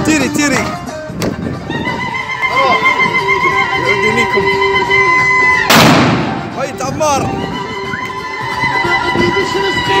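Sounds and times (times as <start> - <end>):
rifle shot: 5.7 - 6.4.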